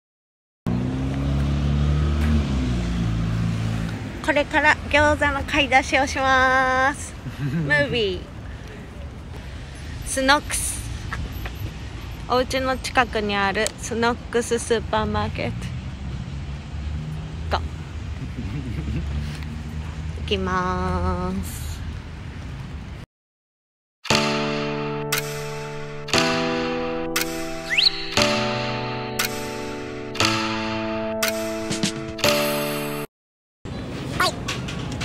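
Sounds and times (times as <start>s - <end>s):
traffic rumble: 0.7s - 23.1s, 33.7s - 35.0s
wind noise on microphone: 9.9s - 12.0s
high chirp: 27.2s - 29.7s.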